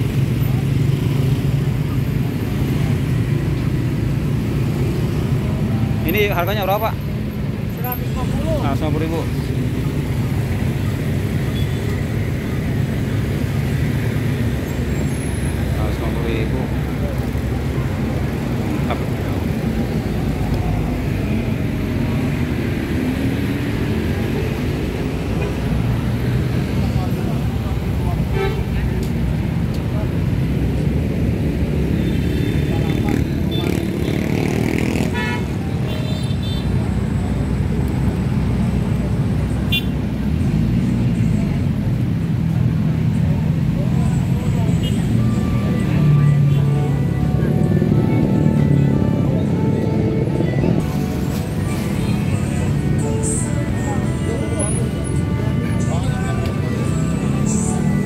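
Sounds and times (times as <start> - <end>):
people's voices: 0.0 - 36.0, 36.8 - 58.0
road traffic rumble: 0.0 - 58.0.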